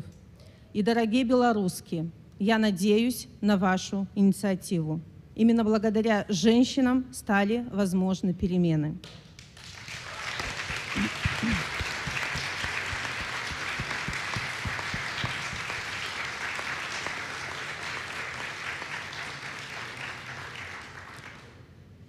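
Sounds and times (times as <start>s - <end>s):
audience applauding: 9.4s - 21.6s.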